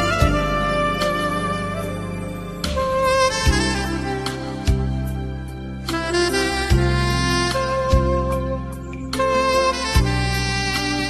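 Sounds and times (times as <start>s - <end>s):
instrumental backing: 0.0s - 11.0s
saxophone melody: 0.0s - 11.0s.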